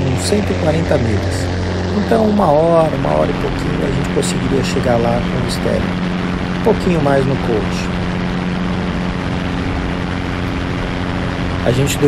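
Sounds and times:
propeller airplane engine drone: 0.0 - 12.0
rush of wind: 0.0 - 12.0.

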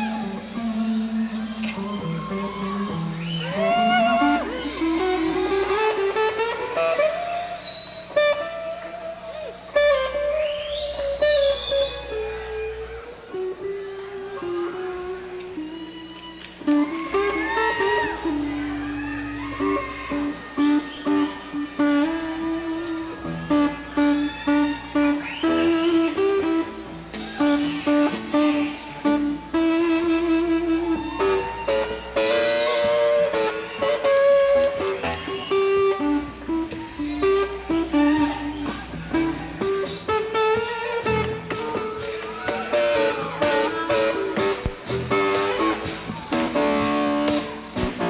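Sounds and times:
country-rock band playing: 0.0 - 48.0.

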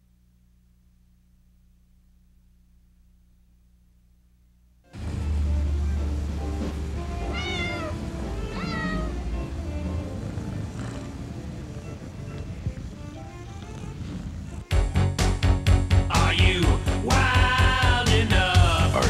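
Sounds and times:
low steady drone: 4.9 - 19.0
cat meowing: 7.2 - 14.7
loud upbeat music: 14.7 - 19.0.

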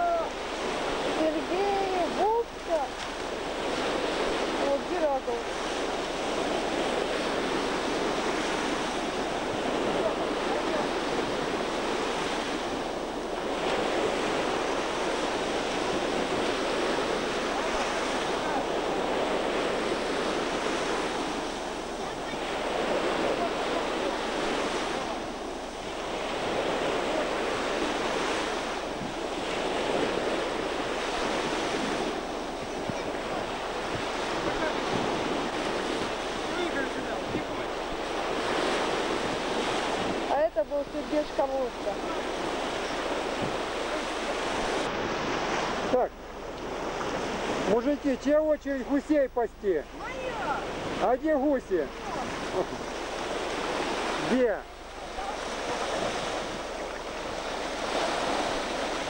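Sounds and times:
surf breaking on a beach: 0.0 - 59.0
wind buffeting the microphone: 0.0 - 59.0.

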